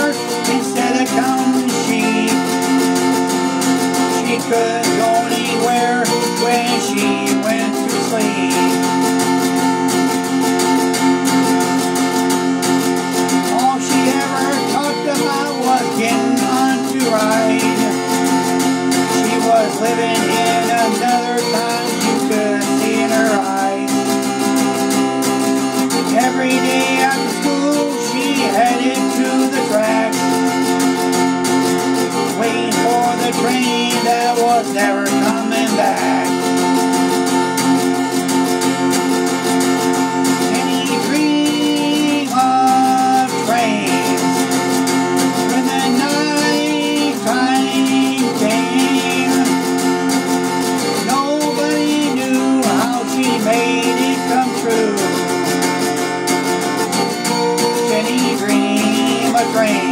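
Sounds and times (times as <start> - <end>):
man singing: 0.0 - 9.9, 13.2 - 31.1, 32.0 - 36.8, 40.2 - 59.9
acoustic guitar: 0.0 - 59.9.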